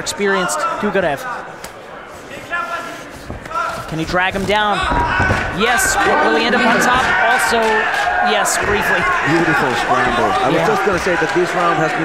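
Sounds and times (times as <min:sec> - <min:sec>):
man commentating: 0:09.0 - 0:12.0.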